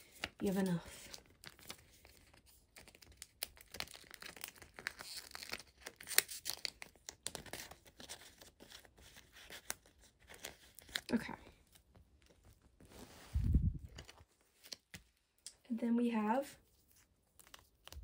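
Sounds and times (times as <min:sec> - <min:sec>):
plastic sleeves crinkling: 0:00.0 - 0:15.1, 0:16.6 - 0:18.0.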